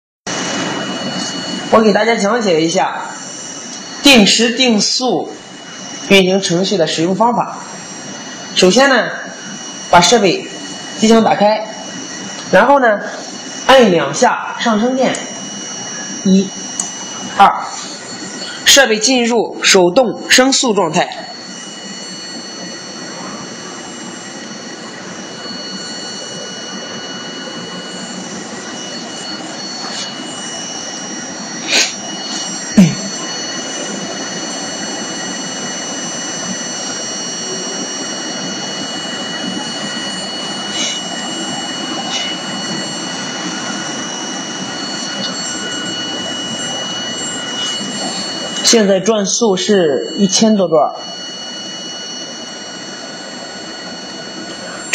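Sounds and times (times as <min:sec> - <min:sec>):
motor whirring and whining: 0:00.3 - 0:54.9.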